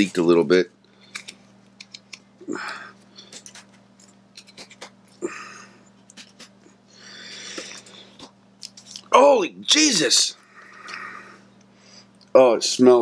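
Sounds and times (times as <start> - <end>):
faint steady hum: 0.0 - 13.0
breathy sounds: 2.4 - 3.6, 5.2 - 5.9, 10.4 - 12.2.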